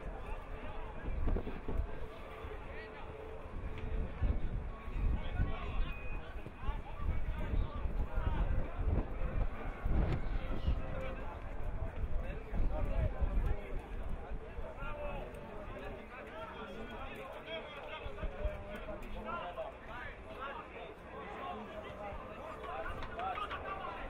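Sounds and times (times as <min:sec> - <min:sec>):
players shouting and calling: 0:14.7 - 0:24.0.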